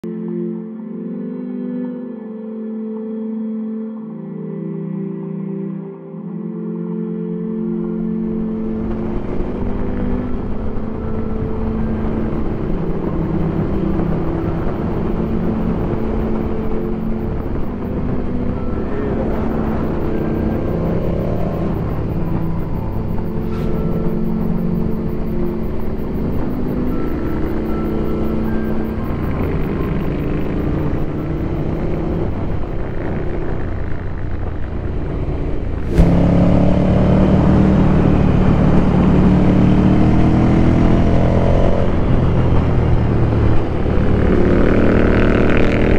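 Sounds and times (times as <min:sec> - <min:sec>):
background music: 0:00.0 - 0:45.9
wind noise: 0:08.2 - 0:40.8
motorcycle engine running: 0:08.6 - 0:45.9.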